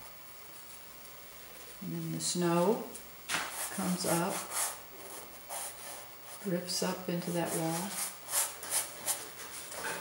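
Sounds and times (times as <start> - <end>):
paintbrush scrubbing on canvas: 7.3 - 9.8.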